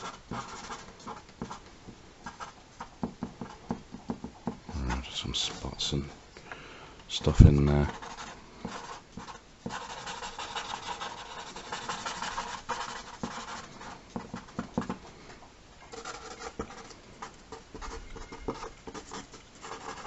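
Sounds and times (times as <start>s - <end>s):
marker scratching on paper: 0.0s - 1.6s, 7.4s - 15.0s, 15.9s - 20.0s
low voice: 7.1s - 8.0s.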